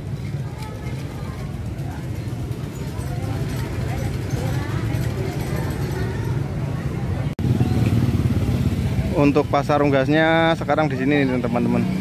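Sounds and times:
small motorcycle engine running: 0.0 - 6.3, 7.4 - 12.0
faint voices: 0.0 - 8.0.

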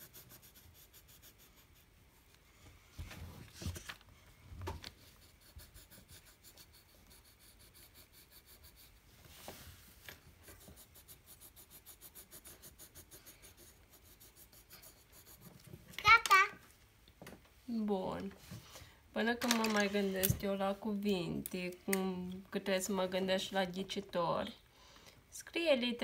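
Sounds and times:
pencil scratching on paper: 0.0 - 2.3, 4.9 - 9.1, 10.4 - 15.7
child's high-pitched vocal sound: 16.0 - 16.6.

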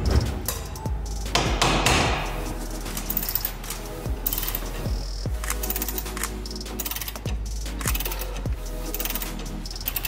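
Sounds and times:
hammer striking metal ratchet: 4.2 - 10.0.

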